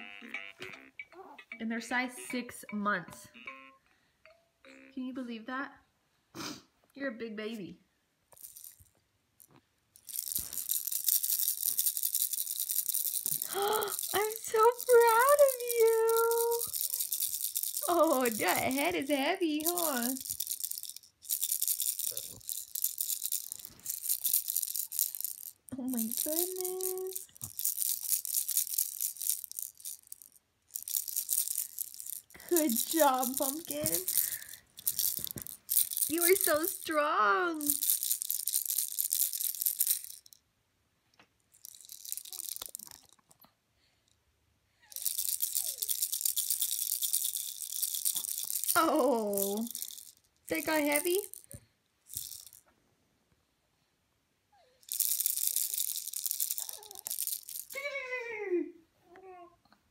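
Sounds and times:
baby rattle shaken: 0:08.3 - 0:40.4, 0:41.5 - 0:43.4, 0:44.9 - 0:52.6, 0:54.8 - 0:57.8.

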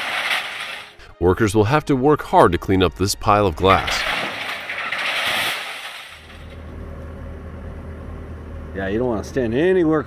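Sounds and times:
glass shattering on pavement: 0:00.0 - 0:01.0, 0:03.7 - 0:06.6.

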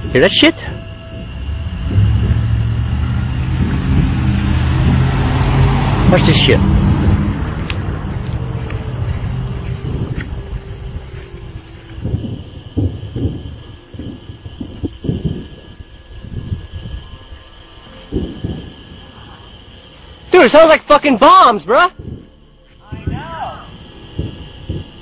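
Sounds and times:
low thuds: 0:00.0 - 0:17.1, 0:21.9 - 0:25.0
deep rumble: 0:00.0 - 0:20.4, 0:21.6 - 0:25.0.

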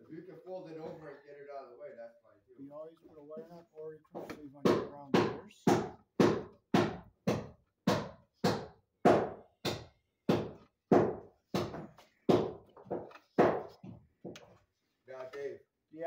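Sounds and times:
hammering on wood: 0:04.1 - 0:14.5.

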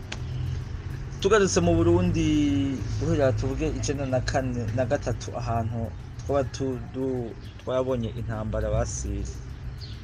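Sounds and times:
steady low hum: 0:00.0 - 0:10.0
person talking: 0:01.2 - 0:09.5.

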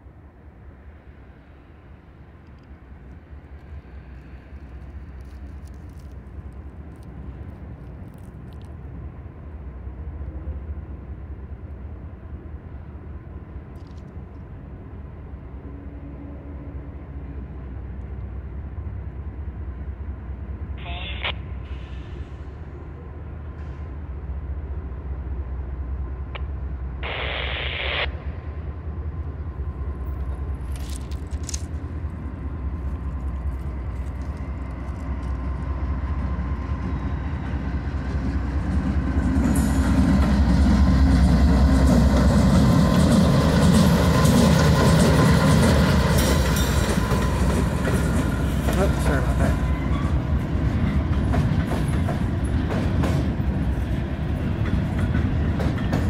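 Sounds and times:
locomotive rumble: 0:00.0 - 0:56.0.

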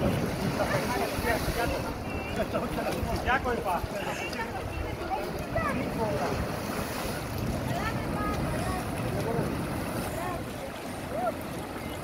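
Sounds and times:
faint voices: 0:00.0 - 0:12.0
sea waves breaking on rocks: 0:00.0 - 0:12.0
wind buffeting microphone: 0:00.0 - 0:12.0.

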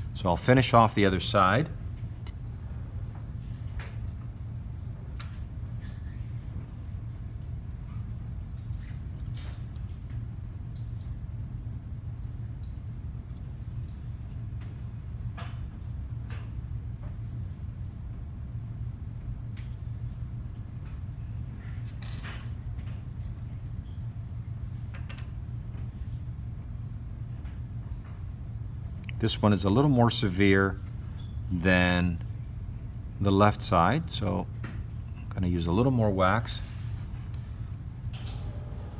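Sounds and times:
low hum: 0:00.0 - 0:38.9.

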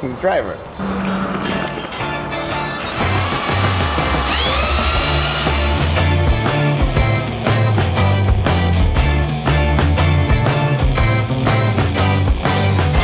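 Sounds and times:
stepping bass line: 0:03.2 - 0:13.0.

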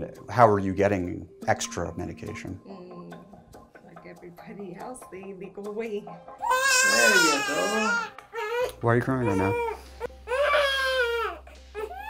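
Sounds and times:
newborn baby crying: 0:06.4 - 0:12.0.

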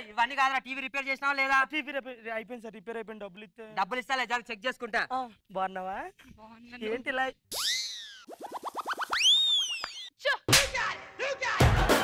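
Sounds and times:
rising chirps: 0:07.5 - 0:10.1.

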